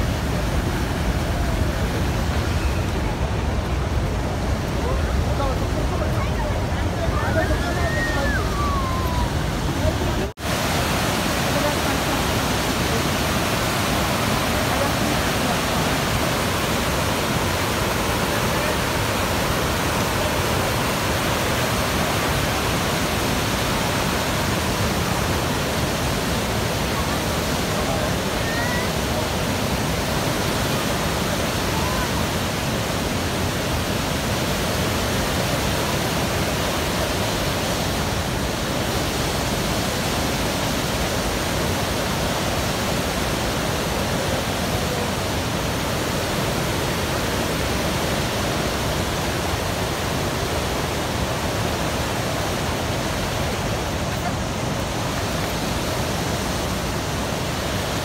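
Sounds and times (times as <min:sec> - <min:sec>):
whitewater rushing over rocks: 0:00.0 - 0:58.0.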